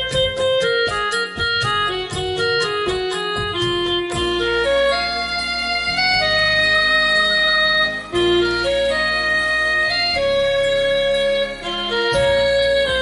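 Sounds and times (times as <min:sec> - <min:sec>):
electronic keyboard slow melody: 0:00.0 - 0:13.0
low sustained bass notes: 0:00.0 - 0:13.0.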